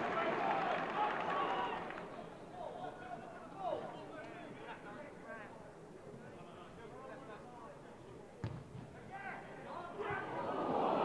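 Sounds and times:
players shouting: 0.0s - 3.9s
stadium crowd: 0.0s - 11.0s
football kick thud: 8.4s - 8.9s.

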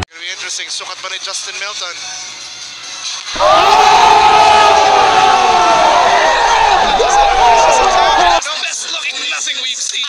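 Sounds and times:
young men shouting: 3.4s - 8.4s.

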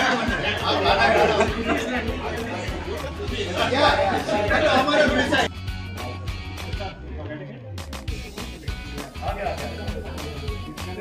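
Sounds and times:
background music with beat: 0.0s - 11.0s
chatter of voices: 0.0s - 11.0s.

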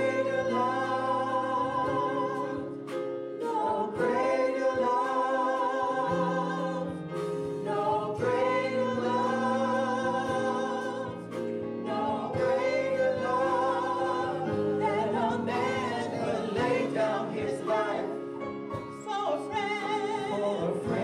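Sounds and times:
group singing gospel: 0.0s - 21.0s.

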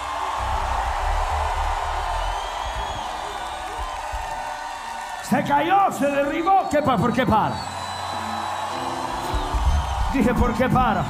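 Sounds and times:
deep bass notes: 0.3s - 4.6s.

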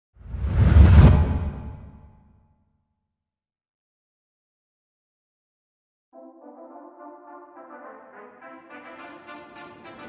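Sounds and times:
whoosh with deep rumble: 0.2s - 2.1s.

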